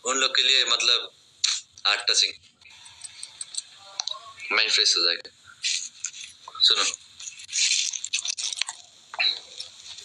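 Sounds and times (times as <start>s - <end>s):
person speaking: 0.7s - 7.5s.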